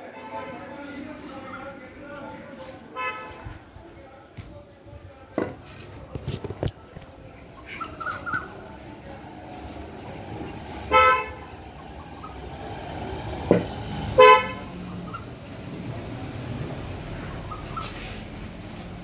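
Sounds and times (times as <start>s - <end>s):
vehicle horn honks: 2.9s - 3.5s, 10.9s - 11.5s, 14.2s - 14.8s.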